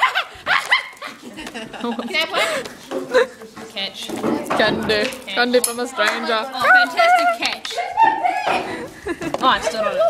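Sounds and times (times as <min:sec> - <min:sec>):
quiet murmur of voices: 0:01.1 - 0:10.0.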